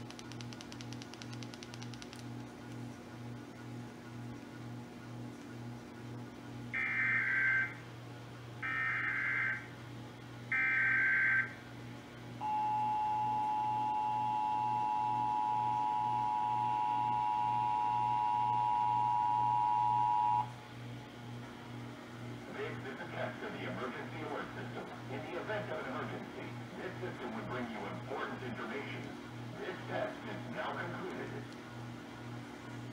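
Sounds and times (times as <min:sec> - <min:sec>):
two-tone attention signal: 0:12.4 - 0:20.5.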